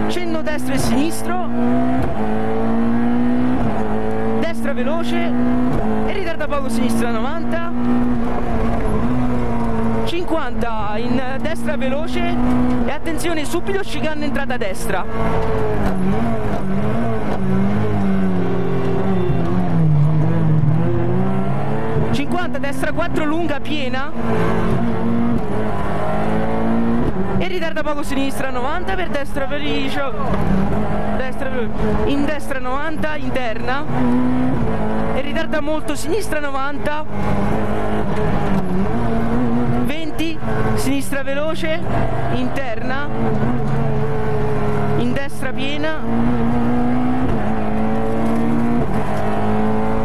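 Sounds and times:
car engine heard from cabin: 0.0 - 50.0.

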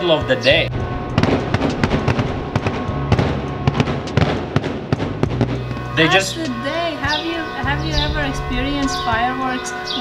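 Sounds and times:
fireworks bangs and crackles: 1.1 - 6.0.

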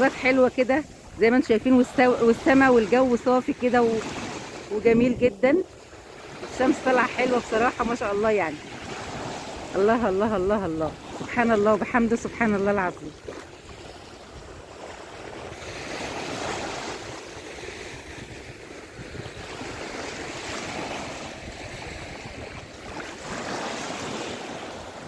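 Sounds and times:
waves washing onto sandy shore: 0.0 - 25.0
wind on microphone: 0.0 - 25.0.

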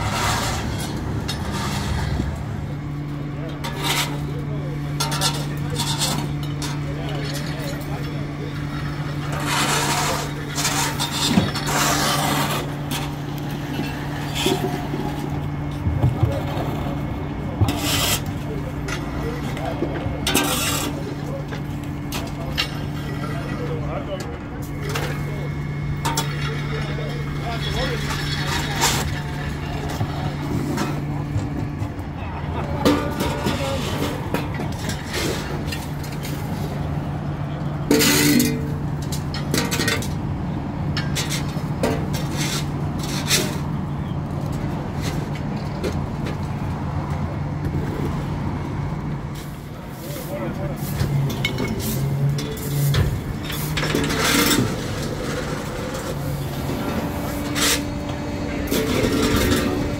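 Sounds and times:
vehicle engine humming: 0.0 - 59.9.

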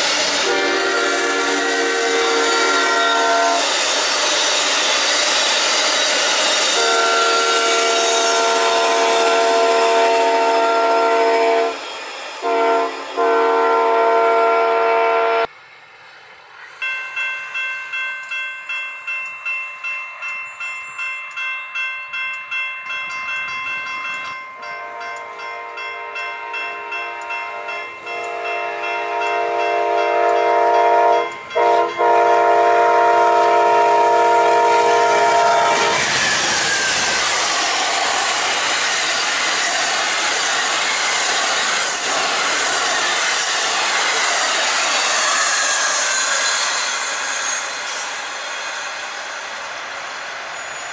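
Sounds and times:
railroad crossing bell ringing: 0.0 - 13.5, 16.8 - 50.9
train wheel and car noise: 0.0 - 50.9
locomotive air horn: 0.3 - 3.8, 6.6 - 11.8, 12.4 - 15.5, 24.6 - 36.3.

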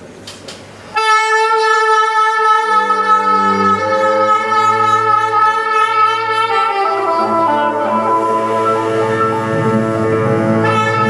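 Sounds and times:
soprano saxophone long note: 0.9 - 11.0.

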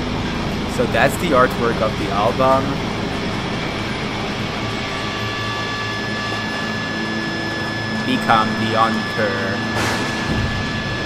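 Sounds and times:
dark ambient drone: 0.0 - 11.0.

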